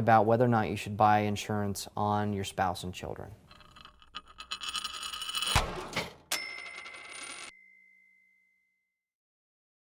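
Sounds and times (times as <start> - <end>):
bright ding: 7.5 - 8.8.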